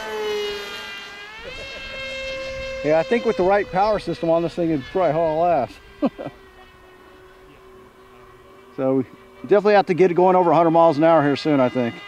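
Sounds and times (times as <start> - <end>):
electric motor whine of model plane: 0.0 - 12.0.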